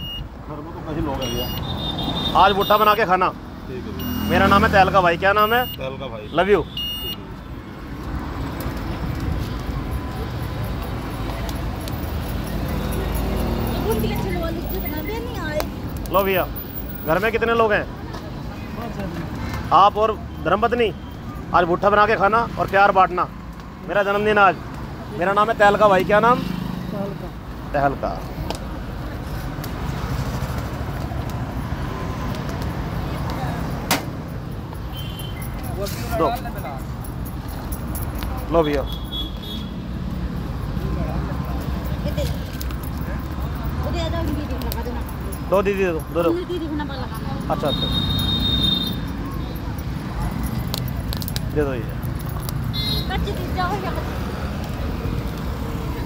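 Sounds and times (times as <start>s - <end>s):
road vehicles rumbling: 0.0s - 56.0s.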